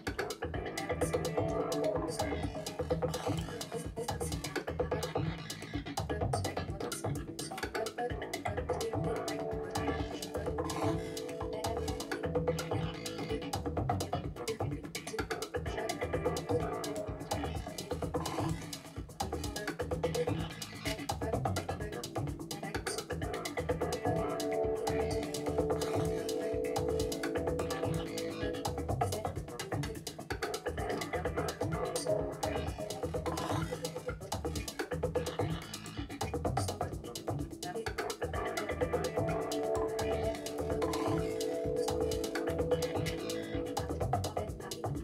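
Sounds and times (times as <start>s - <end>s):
held synth tones: 0.0s - 6.0s, 7.0s - 14.9s, 15.5s - 19.2s, 22.0s - 34.3s, 37.0s - 45.0s
rapid percussive clicks and knocks: 0.0s - 45.0s
low electronic thuds: 0.5s - 14.9s, 21.2s - 45.0s.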